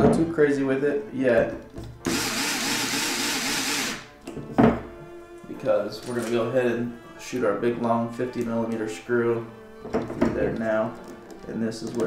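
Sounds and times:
electric screwdriver running: 2.0s - 4.1s.

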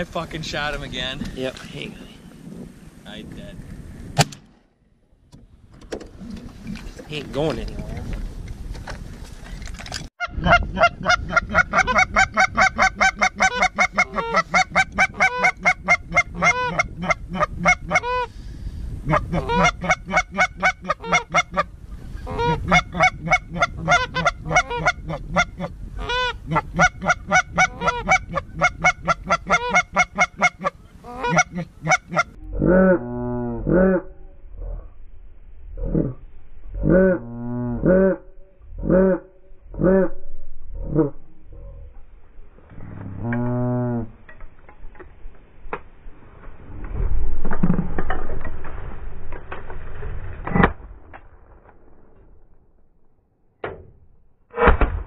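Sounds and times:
goose honking: 10.2s - 18.3s, 22.3s - 32.8s.

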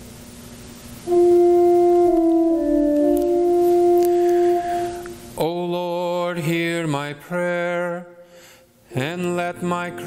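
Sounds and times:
man chanting on one pitch: 8.9s - 10.0s.

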